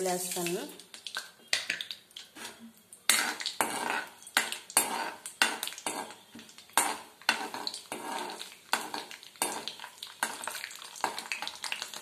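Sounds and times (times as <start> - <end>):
faint sizzle of oil: 0.0 - 12.0.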